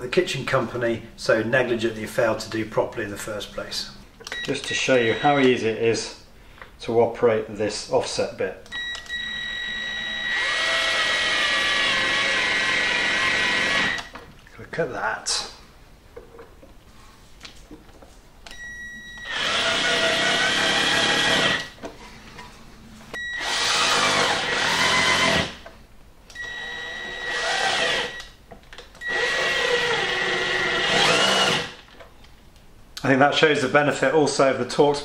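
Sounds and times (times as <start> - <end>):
cordless drill driving screws: 9.5 - 14.1, 19.2 - 21.7, 23.4 - 25.6, 26.5 - 28.2, 29.0 - 31.8.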